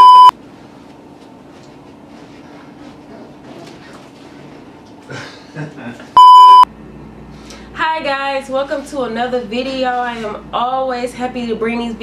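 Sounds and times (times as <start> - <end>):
censor bleep: 0.0 - 0.3, 6.2 - 6.7.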